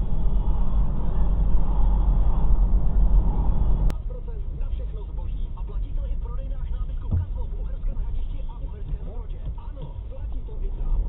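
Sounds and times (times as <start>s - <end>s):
car cabin road and engine noise: 0.0s - 11.0s.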